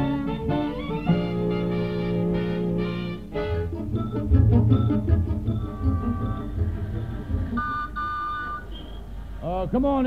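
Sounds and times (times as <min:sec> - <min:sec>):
organ music: 0:00.0 - 0:09.2
low engine rumble: 0:03.9 - 0:09.8
car horn tone: 0:05.5 - 0:06.6, 0:07.5 - 0:09.1.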